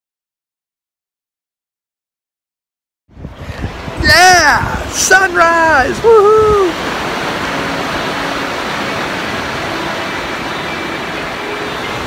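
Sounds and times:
ocean surf on sandy beach: 0:03.1 - 0:12.0.

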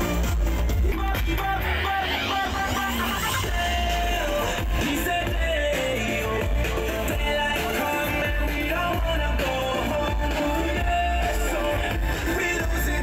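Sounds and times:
live band music: 0:00.0 - 0:02.2
guitar: 0:00.0 - 0:13.0
heavy steady bass: 0:00.0 - 0:13.0.

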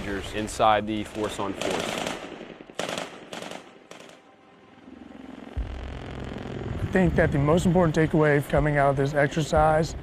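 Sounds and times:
rifle shots echoing: 0:00.0 - 0:04.4.

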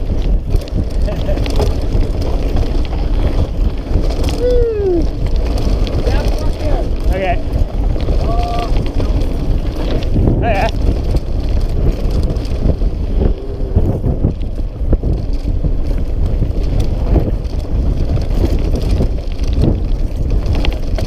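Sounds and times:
tyre rumble over dirt: 0:00.0 - 0:21.0
wind buffeting microphone: 0:00.0 - 0:21.0.

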